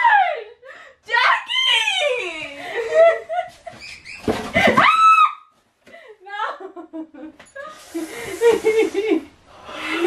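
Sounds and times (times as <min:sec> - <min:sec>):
women laughing: 0:02.5 - 0:04.8, 0:06.6 - 0:09.3.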